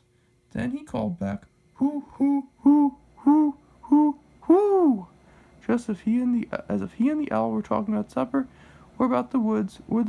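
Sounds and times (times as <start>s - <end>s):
person imitating owl hoots: 1.8s - 5.1s.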